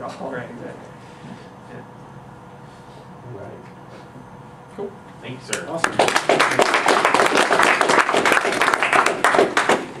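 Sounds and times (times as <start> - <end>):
audience applauding: 5.8 - 10.0.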